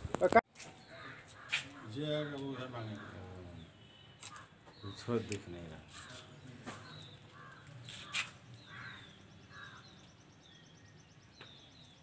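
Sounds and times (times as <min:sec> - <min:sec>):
birds chirping: 0:00.1 - 0:12.0
harsh bird calls: 0:00.6 - 0:12.0.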